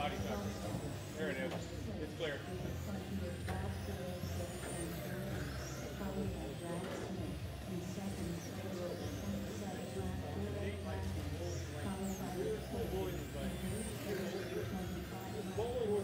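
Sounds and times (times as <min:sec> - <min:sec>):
low hum in hall: 0:00.0 - 0:16.0
rc car motors whining: 0:00.0 - 0:16.0.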